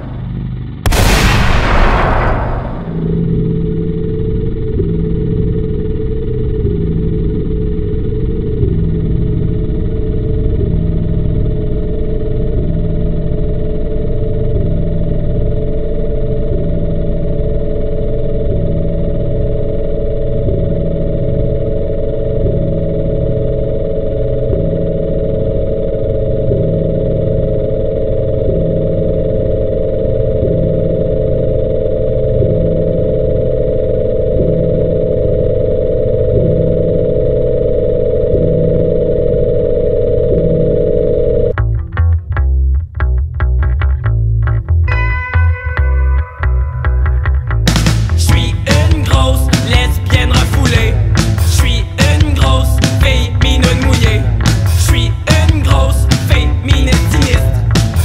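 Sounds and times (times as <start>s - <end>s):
low bass pattern: 0.0s - 37.3s, 40.3s - 58.0s
muffled synthesizer music: 0.0s - 58.0s
sustained high tone: 44.9s - 47.2s.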